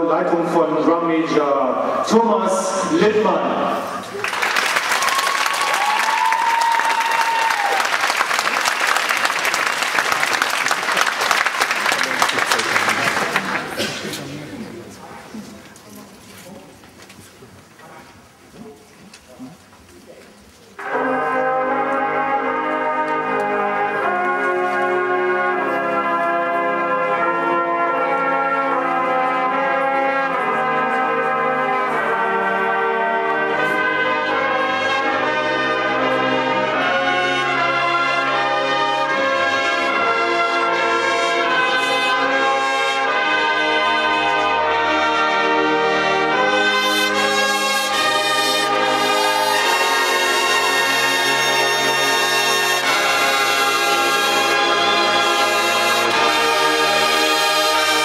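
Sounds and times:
brass chords: 0.0s - 4.4s, 20.8s - 58.0s.

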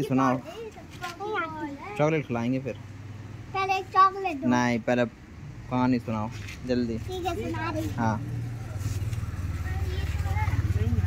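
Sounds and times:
vehicle engine idling: 7.2s - 11.0s.

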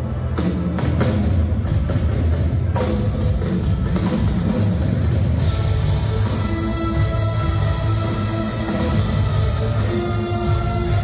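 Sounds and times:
live band instrumental: 0.0s - 11.0s.

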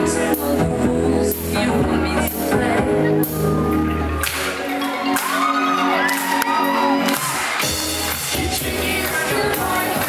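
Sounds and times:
electronic pop band playing: 0.0s - 10.0s
crowd cheering and whooping: 3.0s - 9.4s.

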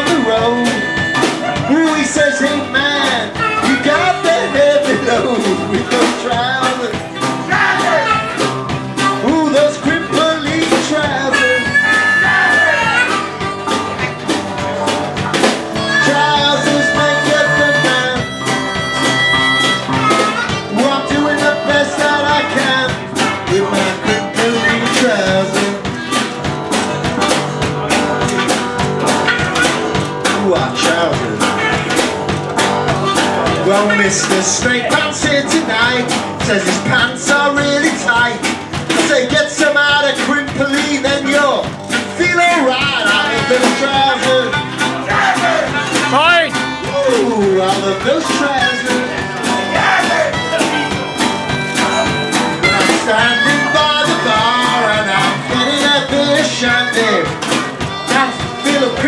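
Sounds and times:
acoustic guitar: 0.0s - 59.0s
drums beat: 0.0s - 59.0s.

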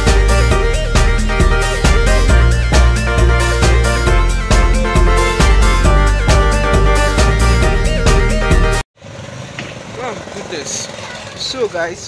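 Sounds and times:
vehicle engines and traffic: 9.0s - 12.0s.

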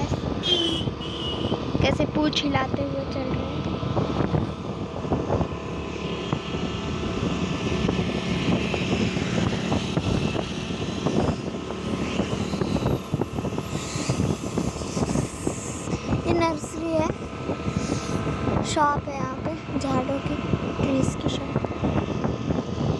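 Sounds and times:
vehicle engine running: 0.0s - 22.9s.

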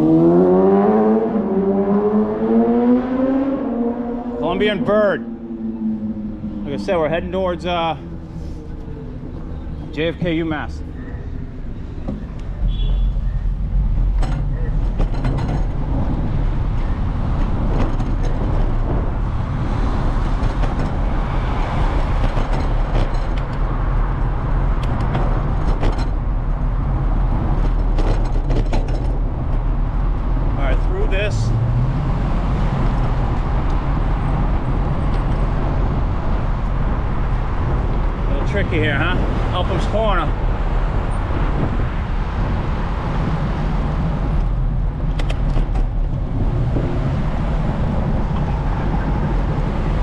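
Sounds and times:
road noise rumble: 0.0s - 50.0s
street traffic: 0.0s - 50.0s
wind buffeting microphone: 11.4s - 50.0s.

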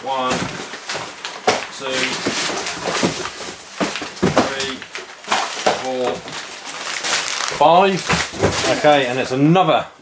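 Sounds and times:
packing paper rustling and crinkling: 0.0s - 9.4s.

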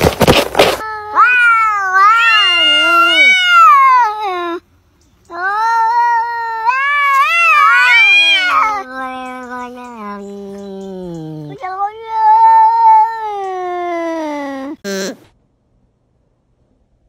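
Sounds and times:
cat yowling: 1.0s - 4.6s, 5.4s - 14.8s.

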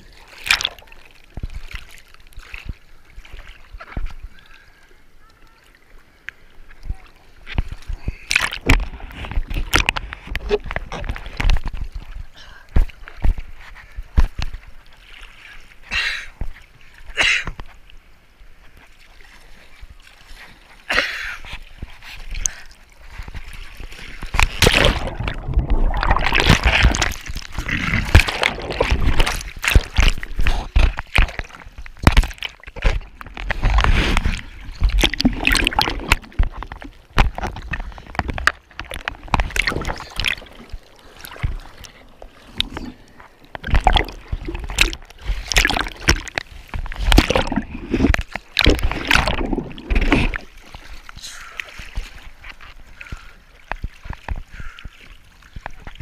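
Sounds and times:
seawater splashing and gurgling: 0.0s - 56.0s.

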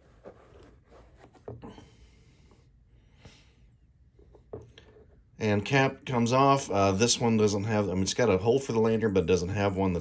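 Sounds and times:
soft rubbing on foam: 0.0s - 1.6s.

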